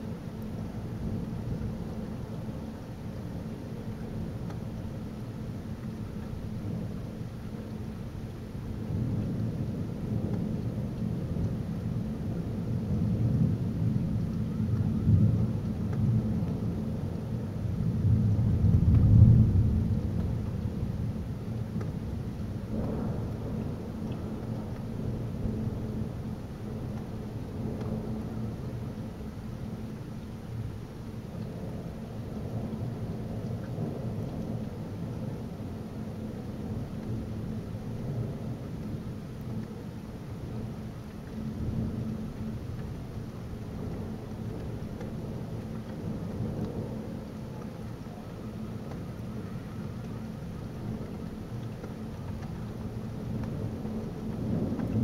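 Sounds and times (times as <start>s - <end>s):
steady rain: 0.0s - 55.0s
rolling thunder: 8.7s - 29.3s, 53.0s - 55.0s.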